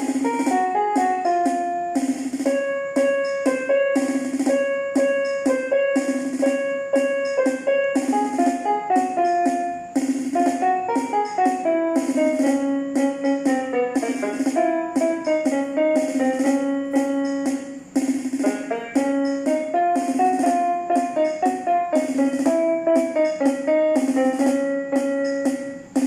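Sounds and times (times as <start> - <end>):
electronic keyboard melody: 0.0 - 26.0
keyboard drum rhythm: 0.0 - 26.0.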